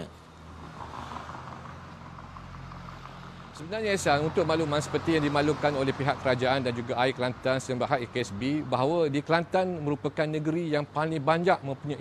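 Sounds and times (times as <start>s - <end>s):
car driving past: 0.0s - 6.7s.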